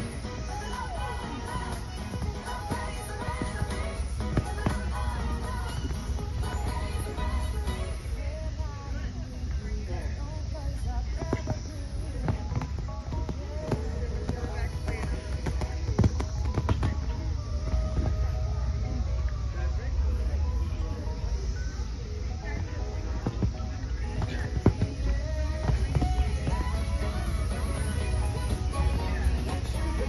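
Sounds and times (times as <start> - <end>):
background music: 0.0 - 30.0
people talking: 0.0 - 30.0.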